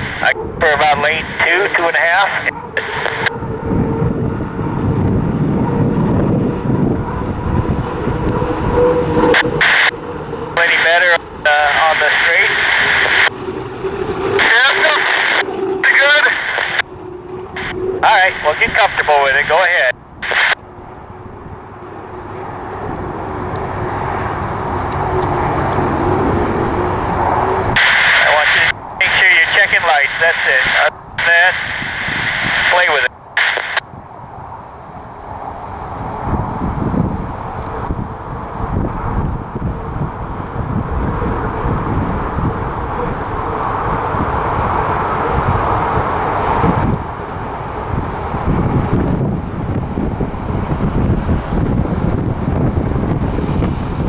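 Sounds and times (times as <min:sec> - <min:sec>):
radio speech: 0:00.0 - 0:03.4, 0:09.1 - 0:09.9, 0:10.5 - 0:16.9, 0:17.6 - 0:20.6, 0:27.8 - 0:33.8
turbine boat engine roaring: 0:00.0 - 0:54.0.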